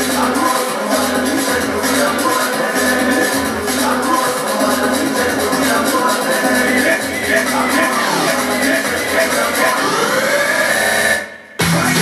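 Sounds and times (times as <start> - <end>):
afro house dj mix: 0.0 - 12.0
rising synth sweep: 6.7 - 12.0.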